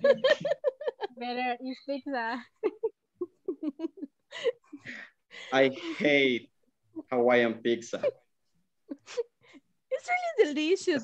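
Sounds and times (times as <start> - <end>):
conversation over video call: 0.0 - 11.0.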